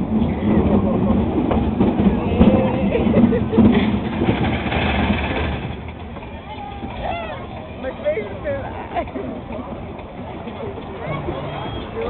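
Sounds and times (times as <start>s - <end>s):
roller coaster cars rumbling: 0.0s - 12.0s.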